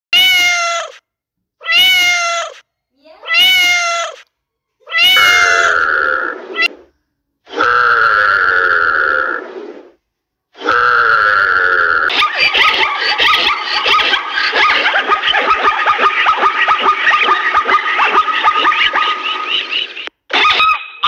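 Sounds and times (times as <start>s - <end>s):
cat meowing: 0.1s - 1.0s, 1.6s - 2.6s, 3.2s - 6.9s
steady high tone over low note: 5.2s - 6.2s.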